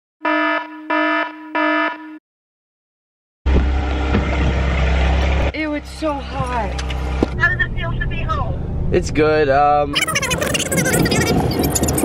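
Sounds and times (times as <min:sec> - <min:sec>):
alarm buzzer blasts: 0:00.2 - 0:02.2
steady lower buzz: 0:03.5 - 0:09.1.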